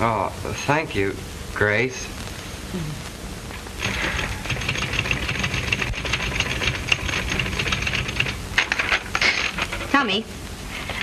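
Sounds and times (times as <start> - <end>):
typewriter key clatter: 4.5 - 9.9.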